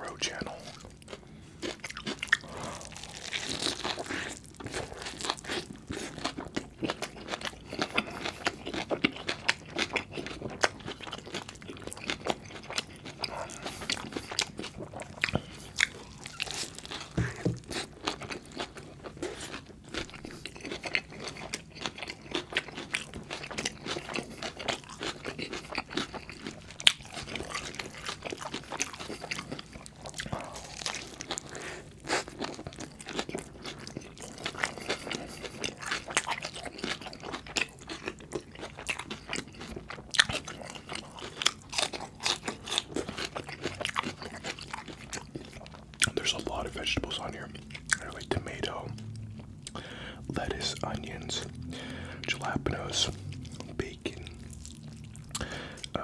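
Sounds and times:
chewing with crunching bites: 0:00.1 - 0:56.0
wet mouth sounds: 0:46.0 - 0:56.0.

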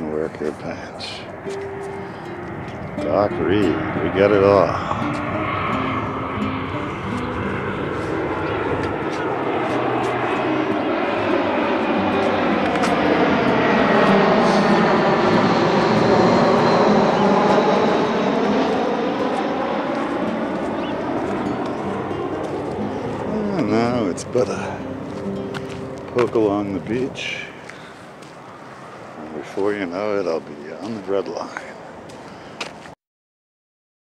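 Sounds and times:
jet aircraft passing overhead: 0:00.0 - 0:32.9.

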